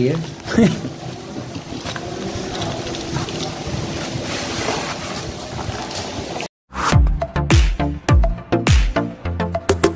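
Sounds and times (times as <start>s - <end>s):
packaging rustling and crinkling: 0.0s - 6.4s.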